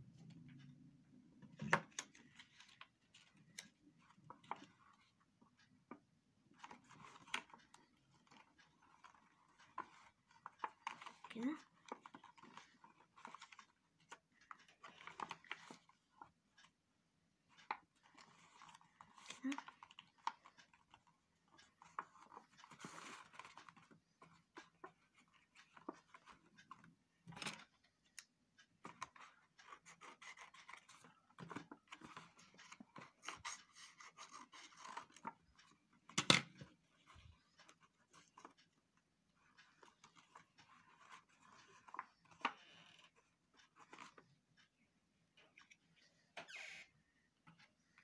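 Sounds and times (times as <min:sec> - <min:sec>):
small clicks and taps: 0:00.0 - 0:46.6.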